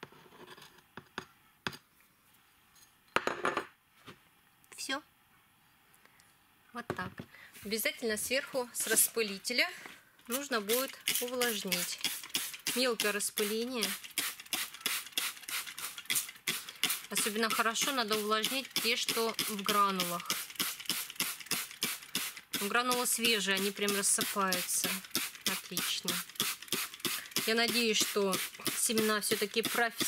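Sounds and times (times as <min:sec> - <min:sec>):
saucer clattering on wooden table: 0:03.2 - 0:03.7
spray bottle hissing: 0:10.7 - 0:12.8, 0:13.4 - 0:17.1, 0:18.8 - 0:22.4, 0:23.6 - 0:30.0.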